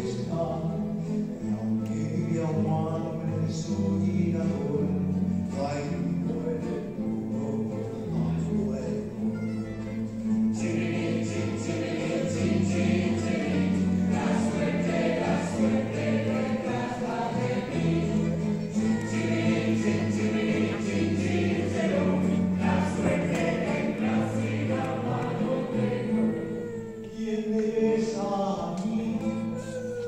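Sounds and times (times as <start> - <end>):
person singing: 0.0 - 30.0.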